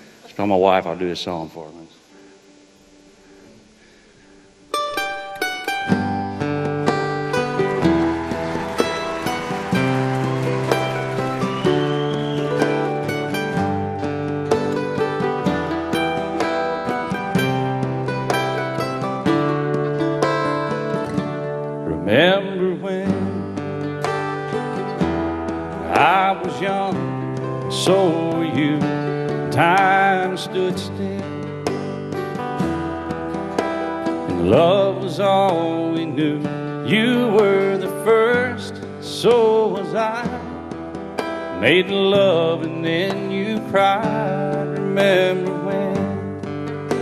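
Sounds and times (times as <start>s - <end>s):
acoustic country band playing: 3.2s - 47.0s
sliding wavering lead guitar line: 4.4s - 47.0s
picked string notes: 4.6s - 47.0s.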